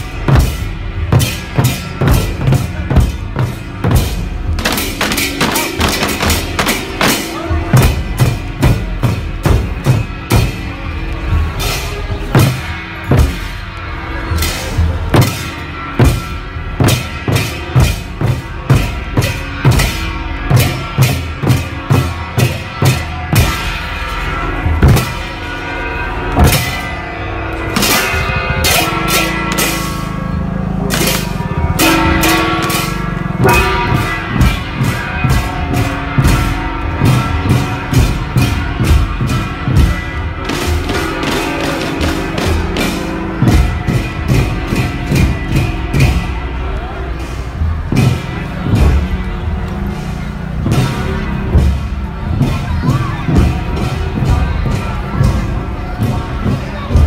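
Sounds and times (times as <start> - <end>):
barrel drums beating: 0.0 - 57.0
bright metal percussion: 0.0 - 57.0.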